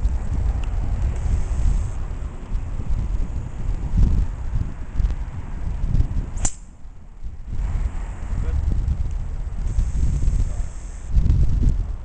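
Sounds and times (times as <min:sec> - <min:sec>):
wind rumbling on microphone: 0:00.0 - 0:12.0
golf club striking ball: 0:06.4 - 0:06.8.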